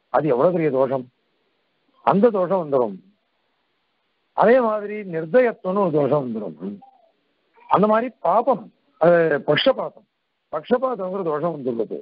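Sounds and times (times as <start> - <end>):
man talking: 0.1 - 1.1, 2.0 - 3.1, 4.4 - 6.9, 7.6 - 12.0.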